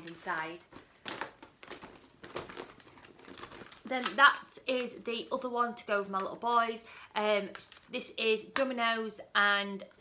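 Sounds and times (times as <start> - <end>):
rustling of packaged items: 0.0 - 8.2.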